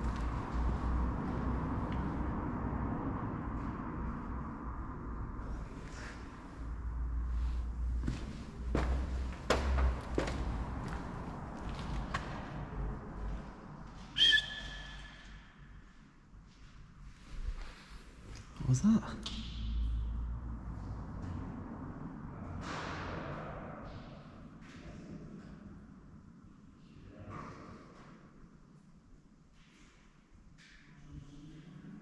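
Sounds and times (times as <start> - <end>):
knocks: 8.8 - 10.5
whistle-like tone: 14.2 - 15.6.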